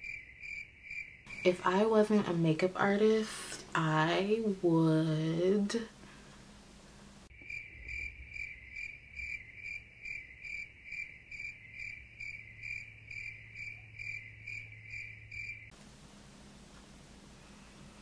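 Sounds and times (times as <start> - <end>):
cricket chirping: 0.0 - 1.5, 7.3 - 15.8.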